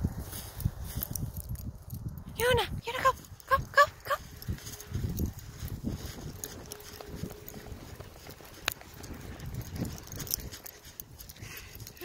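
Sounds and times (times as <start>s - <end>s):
footsteps crunching in snow: 0.0s - 1.8s, 3.0s - 12.0s.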